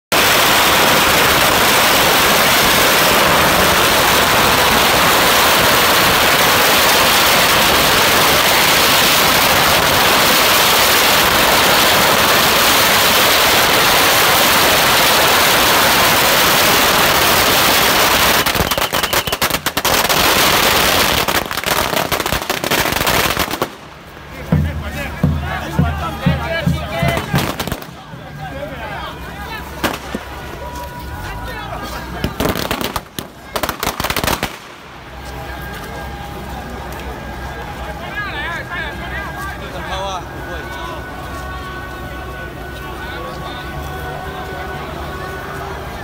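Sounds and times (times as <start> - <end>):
firecrackers exploding: 0.1 - 28.3, 29.6 - 31.0, 32.1 - 36.3.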